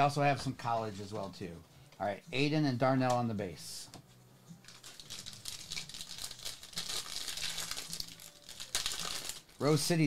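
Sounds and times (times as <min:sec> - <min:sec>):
foil wrapper crinkling and tearing: 0:04.6 - 0:09.8.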